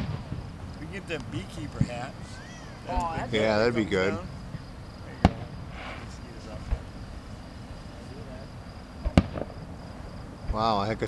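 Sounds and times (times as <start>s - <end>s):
fireworks bursting: 0.0s - 11.0s
high insect trill: 0.0s - 11.0s.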